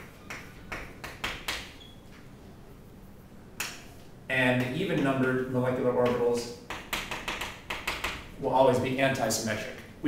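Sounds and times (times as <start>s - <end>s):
chalk tapping on blackboard: 0.0s - 1.9s, 6.0s - 8.3s.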